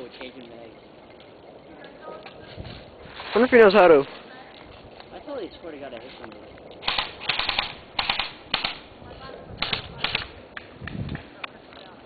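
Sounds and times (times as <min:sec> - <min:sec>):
lone gun clicks: 0:06.3 - 0:08.8
airsoft guns firing bursts: 0:06.8 - 0:08.9, 0:09.6 - 0:10.3.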